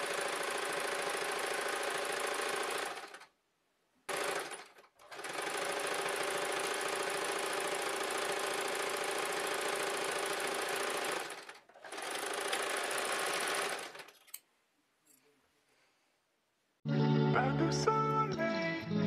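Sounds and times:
electric sewing machine stitching: 0:00.0 - 0:03.3, 0:04.1 - 0:14.2.

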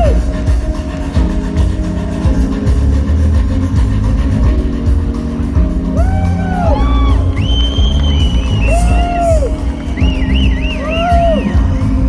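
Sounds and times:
live funk band: 0:00.0 - 0:12.0.

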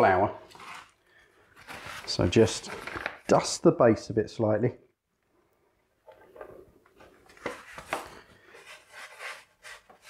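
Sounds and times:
flour bag rustling: 0:00.4 - 0:03.3.

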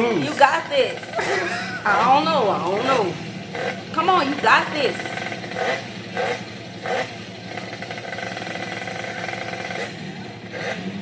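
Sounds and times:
engine drone: 0:00.0 - 0:11.0.

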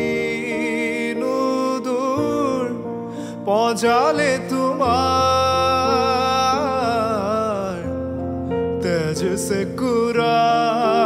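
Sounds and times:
piano chord: 0:00.0 - 0:11.0
man singing long note: 0:08.8 - 0:11.0.

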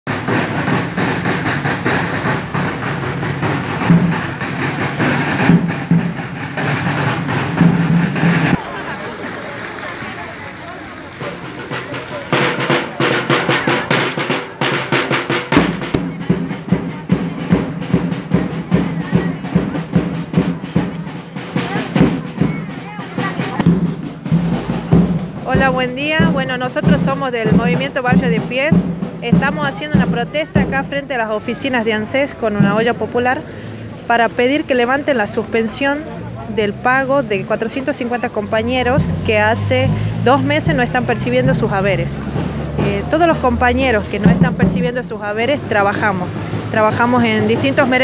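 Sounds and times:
crowd talking: 0:00.0 - 0:48.0
street noise: 0:00.0 - 0:48.0
drums beaten in steady rhythm: 0:00.1 - 0:08.8, 0:10.9 - 0:48.0.

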